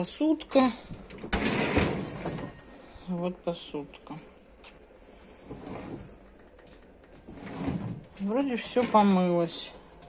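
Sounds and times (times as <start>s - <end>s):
dishwasher racks and dishes clicking: 0.5s - 2.7s.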